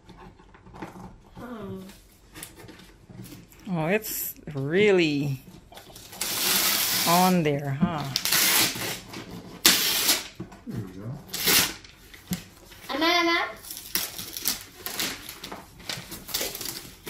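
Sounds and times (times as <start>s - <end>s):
wrapping paper tearing: 5.8s - 7.4s, 8.1s - 10.4s, 11.3s - 17.0s.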